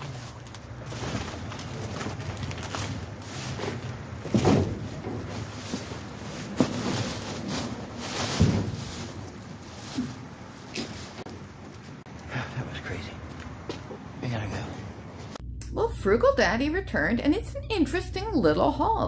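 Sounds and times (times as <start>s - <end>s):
plastic bags rustling: 0.0s - 12.0s.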